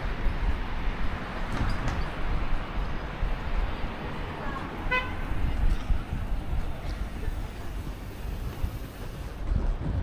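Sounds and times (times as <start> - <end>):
city street traffic: 0.0 - 10.0
wind buffeting microphone: 0.0 - 10.0.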